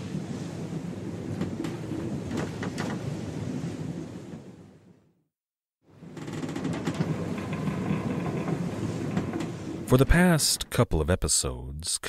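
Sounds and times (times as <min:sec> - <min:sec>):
ocean waves: 0:00.0 - 0:05.2, 0:05.8 - 0:11.8
wind: 0:00.0 - 0:05.2, 0:05.8 - 0:12.0.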